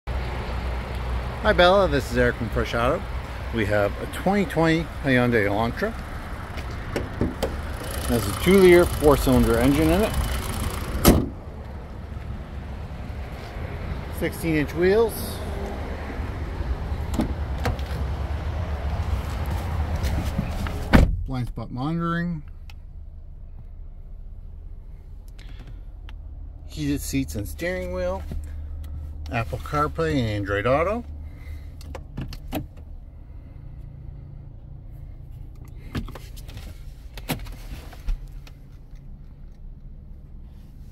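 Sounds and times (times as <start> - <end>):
car engine idling: 0.1 - 17.6
steady low rumble: 0.8 - 31.8
car hood slamming shut: 11.0 - 11.4, 20.9 - 21.2.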